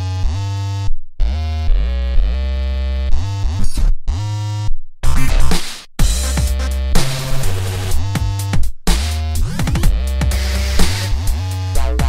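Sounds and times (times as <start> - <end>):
buzzing synth bass: 0.0 - 4.7, 6.0 - 12.0.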